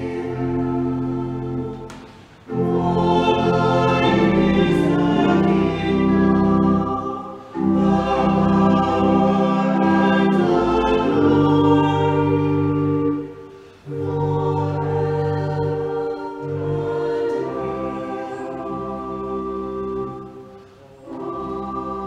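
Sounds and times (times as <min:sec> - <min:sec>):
small choir singing: 0:00.0 - 0:22.0.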